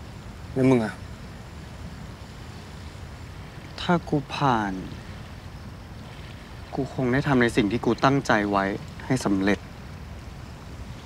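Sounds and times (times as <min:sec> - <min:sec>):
low outdoor rumble: 0:00.0 - 0:11.0
man speaking: 0:00.6 - 0:01.0.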